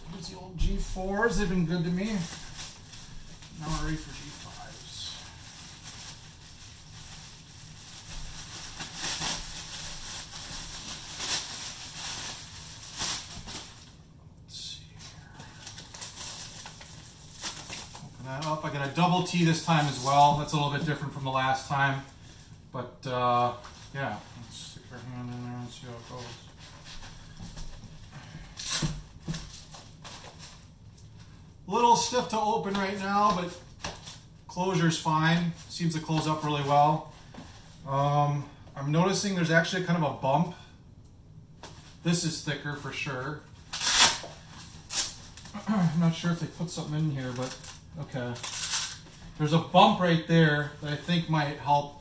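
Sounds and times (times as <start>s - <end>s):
plastic bag rustling and crinkling: 0.0s - 14.0s, 14.9s - 22.7s, 23.3s - 38.4s, 41.6s - 52.0s
soft glove rustles: 23.3s - 31.4s.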